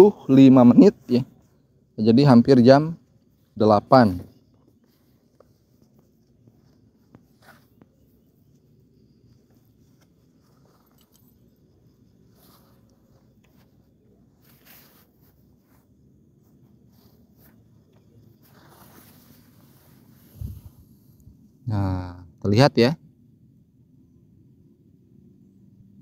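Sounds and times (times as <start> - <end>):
small clicks and rustles: 4.5 - 20.1.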